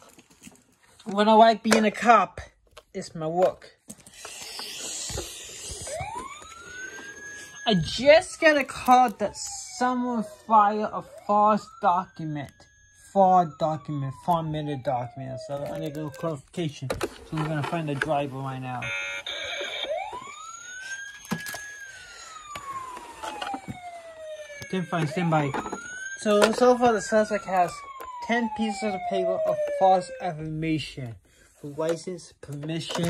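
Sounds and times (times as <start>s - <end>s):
toy siren wailing: 4.1s - 16.7s, 17.7s - 31.0s.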